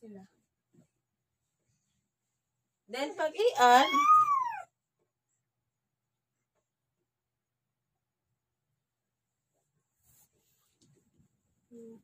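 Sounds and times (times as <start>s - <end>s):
woman speaking: 2.9s - 4.1s
woman's high-pitched exclamation: 3.6s - 4.7s.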